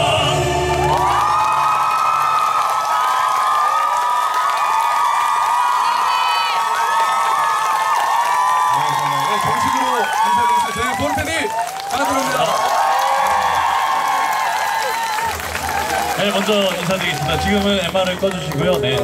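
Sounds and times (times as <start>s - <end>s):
male vocal quartet singing: 0.0s - 1.2s
audience cheering: 0.0s - 19.0s
man speaking: 16.2s - 19.0s.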